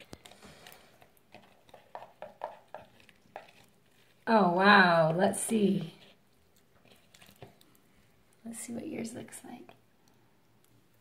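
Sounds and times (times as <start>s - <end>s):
slime squelching: 0.0s - 11.0s.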